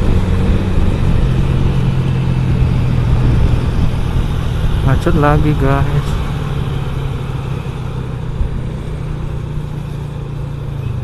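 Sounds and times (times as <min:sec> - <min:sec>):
motorcycle engine running: 0:00.0 - 0:11.0
road and traffic noise: 0:00.0 - 0:11.0.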